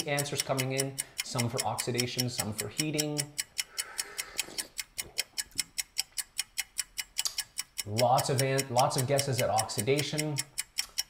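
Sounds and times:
fast countdown ticking: 0.0 - 11.0.

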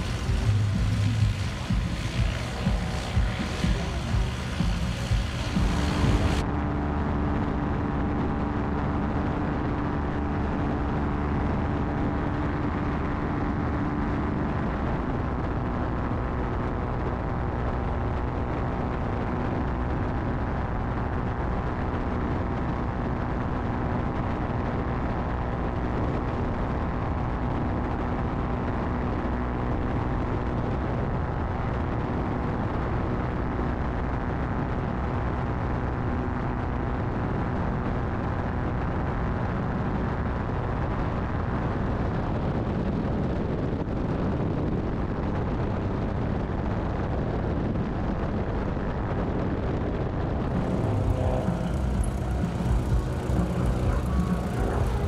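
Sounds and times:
ultralight aircraft engine cruising: 0.0 - 55.0.

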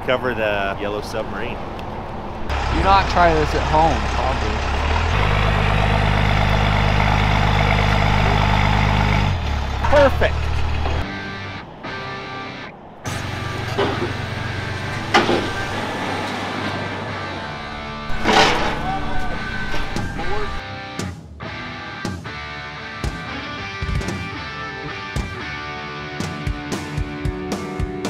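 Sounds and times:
instrumental background music: 11.0 - 28.0.

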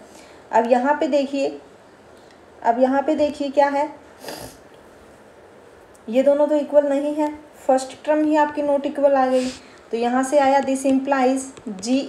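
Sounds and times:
room hiss: 0.0 - 12.0
short breath: 4.2 - 4.6.

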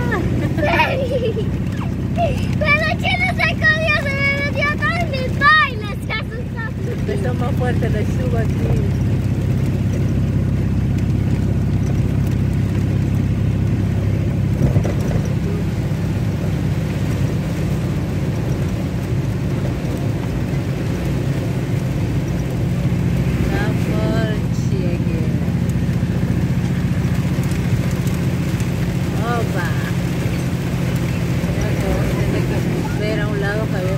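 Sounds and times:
heavy rain on windshield: 0.0 - 33.9
vehicle engine and road noise: 0.0 - 33.9
windshield wipers sweeping: 0.0 - 33.9.

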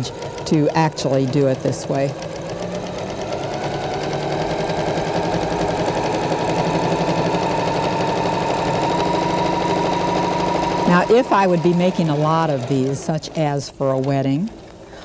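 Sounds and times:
electric sewing machine stitching: 0.0 - 15.0.

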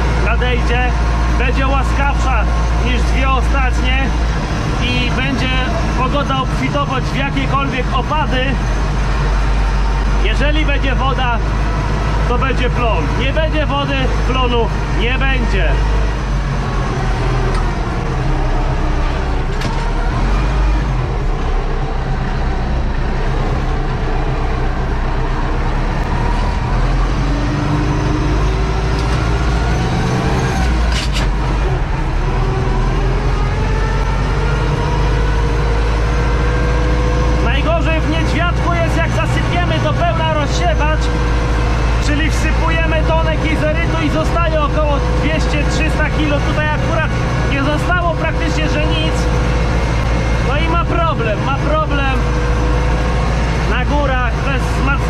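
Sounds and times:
tractor engine running: 0.0 - 55.0.

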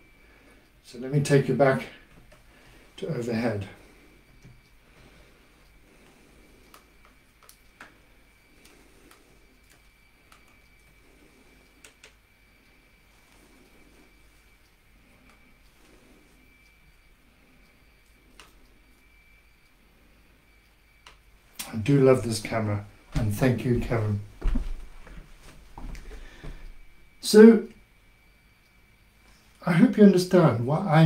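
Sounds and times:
low hum: 0.0 - 29.6
faint high whine: 0.0 - 31.0.

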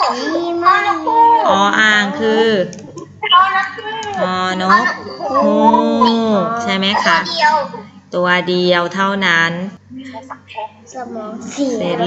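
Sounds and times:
voice drawing out long syllable: 5.2 - 6.6.

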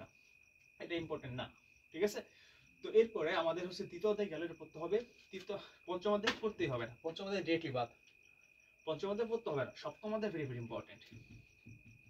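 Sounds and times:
cricket chirping: 0.0 - 12.0
man speaking: 8.9 - 11.1.

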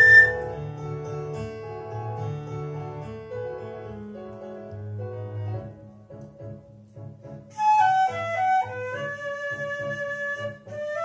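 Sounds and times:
flute holding a high note: 0.0 - 0.5, 7.5 - 11.0
instrumental accompaniment: 0.0 - 11.0.

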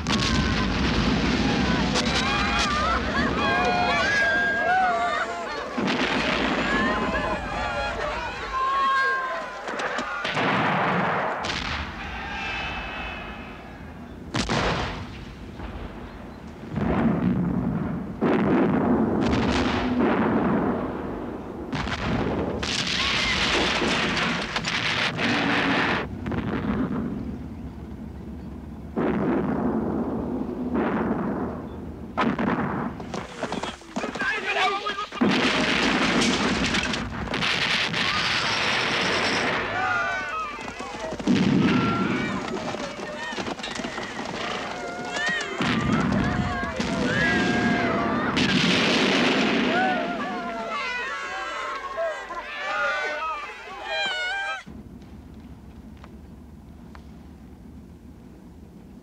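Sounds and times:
shouting voices: 0.0 - 10.4, 33.9 - 35.2, 39.2 - 48.6, 49.6 - 54.7
shells bursting: 5.0 - 8.0, 9.7 - 12.0, 14.3 - 27.6, 28.8 - 34.2, 35.1 - 50.4
field guns firing: 9.7 - 12.0, 14.3 - 16.1, 35.2 - 50.6.

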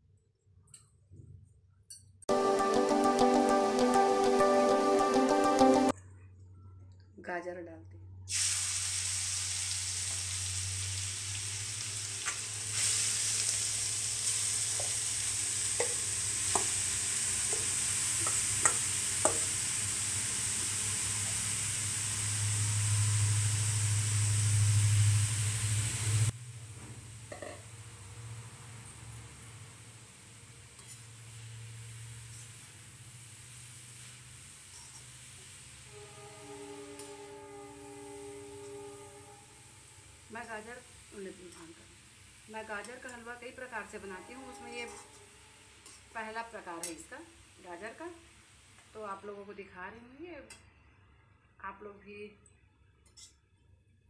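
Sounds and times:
carrot sizzling in hot fat: 8.3 - 49.3.

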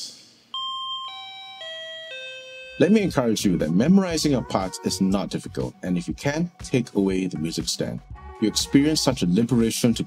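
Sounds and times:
toy keyboard chime notes: 0.5 - 3.3.

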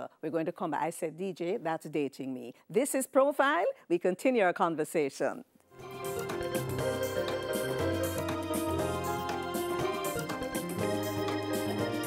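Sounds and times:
instrumental tv theme music: 5.7 - 12.0.

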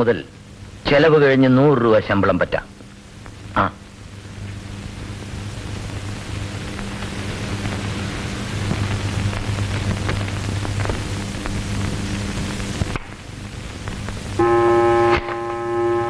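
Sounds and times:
film soundtrack hiss: 0.0 - 16.0
low hum: 3.0 - 16.0.

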